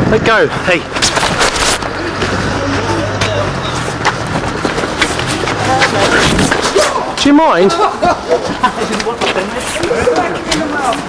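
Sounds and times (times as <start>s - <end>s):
footsteps: 0.8s - 11.0s
rustling: 0.9s - 2.4s, 3.7s - 7.2s
voices in background: 5.2s - 11.0s.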